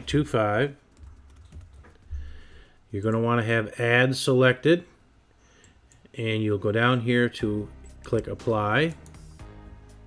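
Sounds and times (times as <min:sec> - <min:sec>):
computer keyboard keystrokes: 0:00.9 - 0:02.1.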